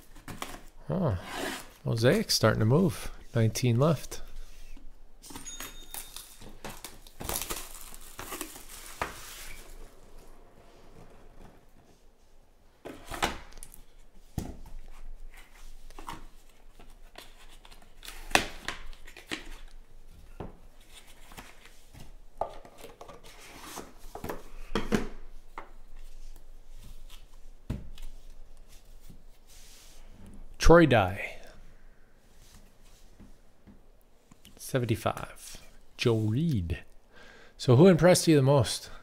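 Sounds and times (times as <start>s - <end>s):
plastic wrap crinkling and tearing: 5.9s - 9.7s.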